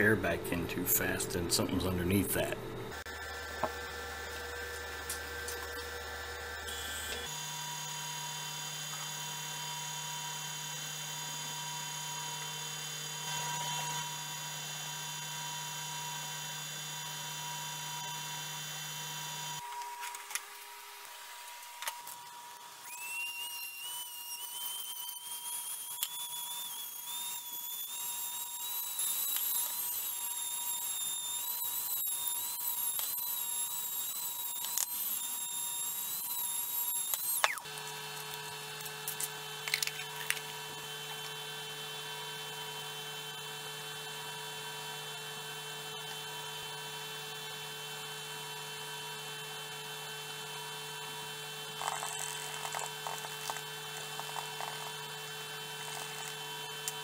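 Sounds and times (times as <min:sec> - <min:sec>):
rotary tool whining: 0:02.9 - 0:44.3, 0:50.6 - 0:57.0
vacuum pump humming: 0:51.2 - 0:57.0.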